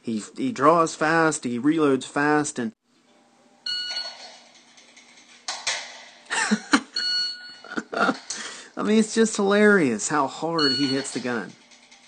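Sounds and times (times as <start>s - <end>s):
electronic timer beep: 3.7s - 4.2s, 7.0s - 7.7s, 10.6s - 11.2s.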